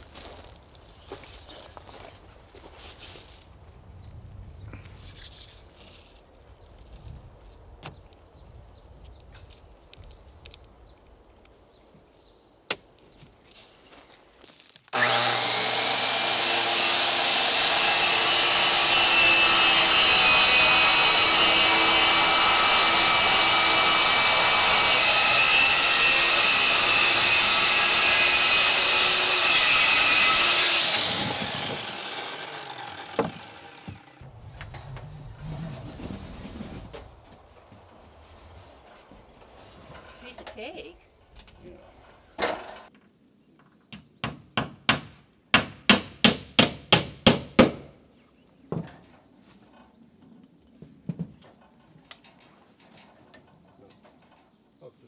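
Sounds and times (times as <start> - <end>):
circular saw cutting board: 15.0 - 37.1.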